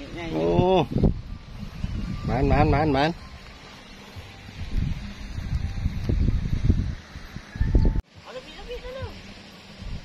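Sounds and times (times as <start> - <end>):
wind buffeting microphone: 0.0 - 3.0, 4.5 - 8.0.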